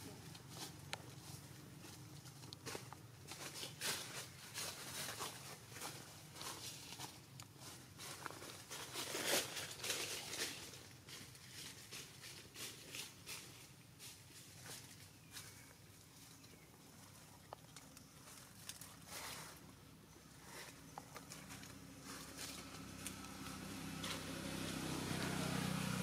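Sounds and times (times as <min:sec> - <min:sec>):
leaves and twigs rustling: 0:00.0 - 0:26.0.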